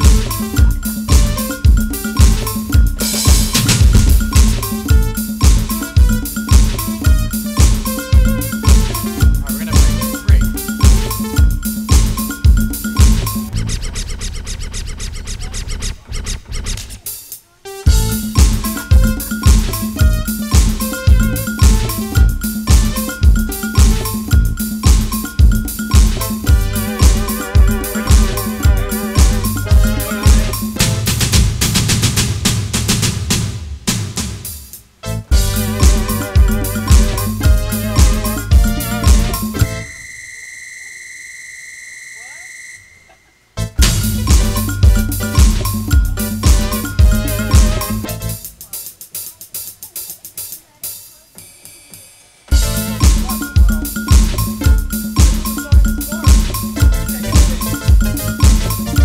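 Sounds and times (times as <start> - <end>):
drums and keyboards: 0.0 - 13.8, 15.3 - 40.0, 43.2 - 59.0
steady bass line: 0.0 - 14.0, 17.9 - 31.7, 35.0 - 39.9, 43.6 - 48.6, 52.5 - 59.0
scratch-like electronic hits: 2.2 - 17.1, 43.8 - 48.3.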